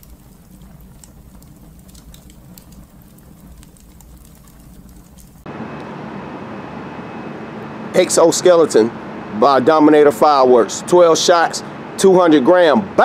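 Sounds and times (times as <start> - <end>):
fire crackling: 0.0 - 13.0
outdoor background noise: 0.0 - 13.0
faint high whine: 5.5 - 13.0.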